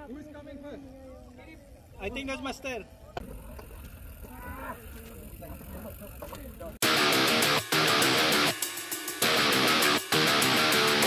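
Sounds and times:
people shouting and calling: 0:04.2 - 0:05.1.

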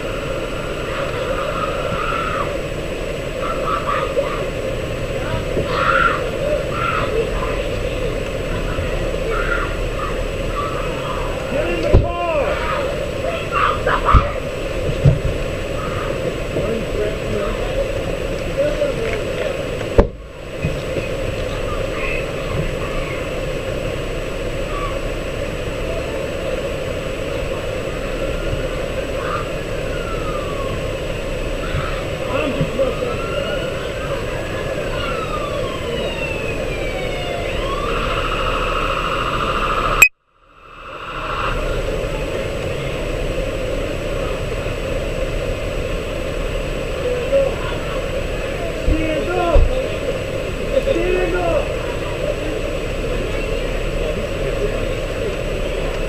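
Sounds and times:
muffled rustle and rumble: 0:00.0 - 0:37.1, 0:40.6 - 0:56.0
faint siren wailing: 0:03.3 - 0:14.7, 0:27.4 - 0:44.7.

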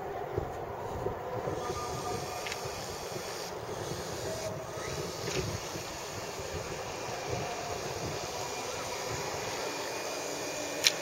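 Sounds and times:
electric motors whining: 0:00.0 - 0:11.0
wind buffeting microphone: 0:00.0 - 0:11.0.

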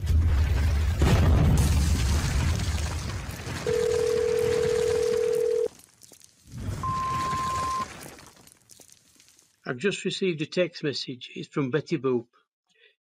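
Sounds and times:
higher telephone beep: 0:03.7 - 0:05.7, 0:06.8 - 0:07.9
low telephone tone: 0:03.7 - 0:05.7, 0:06.8 - 0:07.8.

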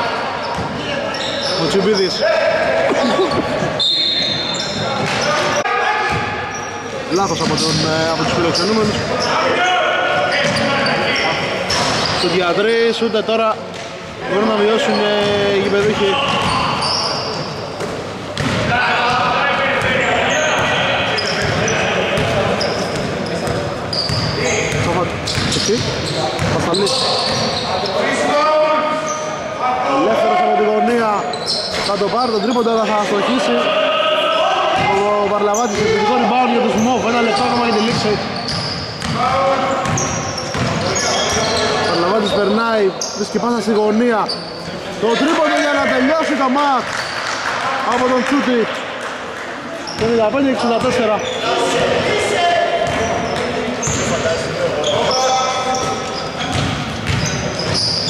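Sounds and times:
voices talking and calling: 0:00.0 - 0:58.0
basketball bouncing on wooden court: 0:15.2 - 0:16.6, 0:17.8 - 0:18.7, 0:22.2 - 0:26.7, 0:37.8 - 0:39.2, 0:39.8 - 0:40.8, 0:55.8 - 0:57.8.

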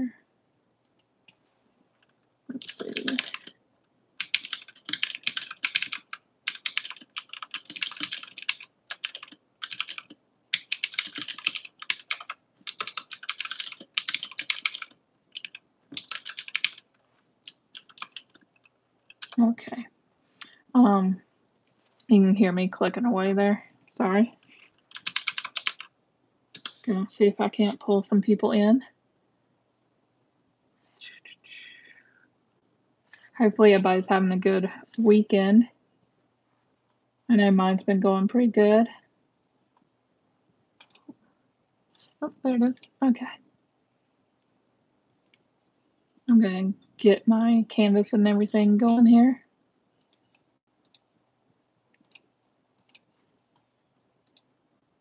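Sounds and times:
woman whispering: 0:02.5 - 0:03.5, 0:31.0 - 0:32.2
computer keyboard typing: 0:02.5 - 0:03.6, 0:04.2 - 0:19.4, 0:24.9 - 0:25.9, 0:26.5 - 0:26.8, 0:40.8 - 0:41.1, 0:52.0 - 0:53.1.

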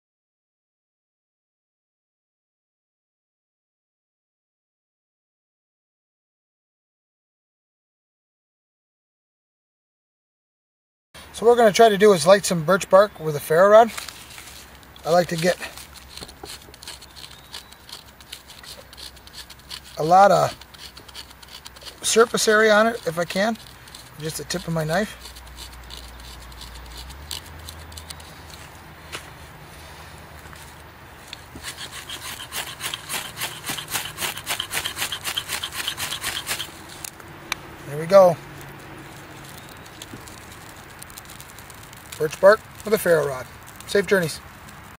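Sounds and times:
knife scraping bark: 0:13.2 - 0:37.2, 0:37.9 - 0:44.3.

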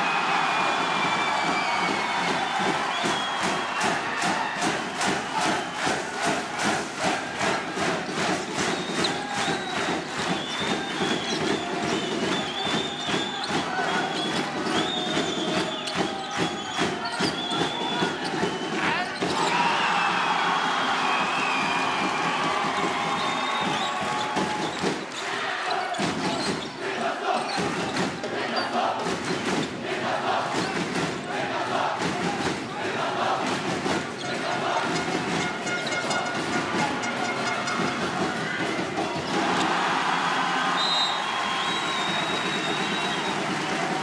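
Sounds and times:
packed crowd: 0:00.0 - 0:44.0.

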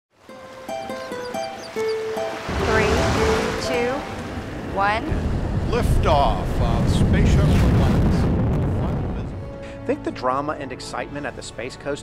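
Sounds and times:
rush of surf-like noise: 0:02.0 - 0:08.3.

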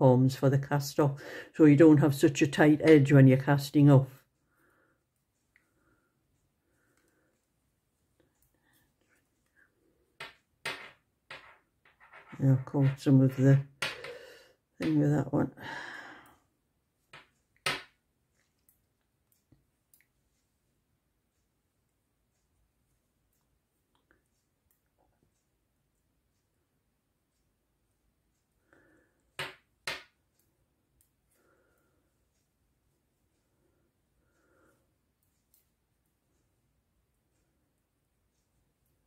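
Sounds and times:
knitting needles scraping: 0:11.3 - 0:13.5.

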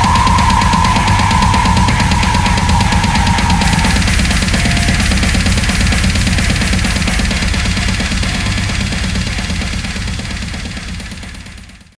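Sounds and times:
death metal band playing: 0:00.0 - 0:11.8.

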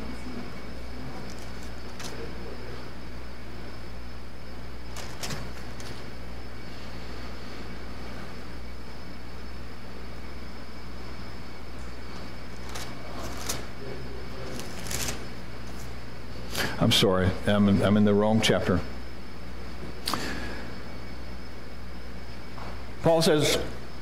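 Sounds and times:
steady low hum: 0:00.0 - 0:24.0
pages rustling: 0:01.2 - 0:02.3, 0:04.9 - 0:06.1, 0:12.6 - 0:13.7, 0:14.4 - 0:15.9.

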